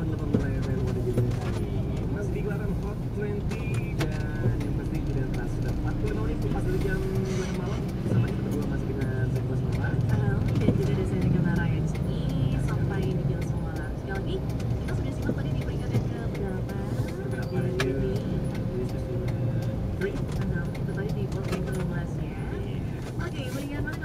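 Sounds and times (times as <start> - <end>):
car engine and road rumble: 0.0 - 24.0
person talking: 0.0 - 24.0.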